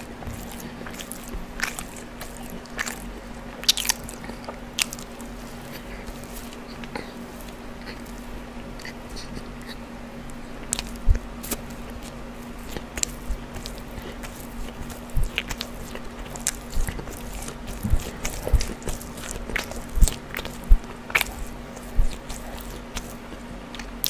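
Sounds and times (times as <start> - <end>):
faint low hum: 0.0 - 24.0
mouth chewing food: 0.0 - 24.0.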